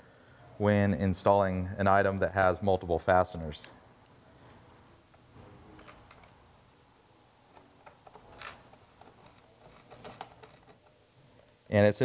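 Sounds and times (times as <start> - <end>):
screwdriver clicking and scraping: 7.5 - 10.9.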